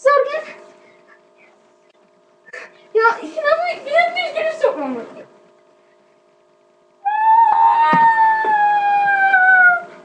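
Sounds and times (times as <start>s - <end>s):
child howling: 7.0s - 9.9s.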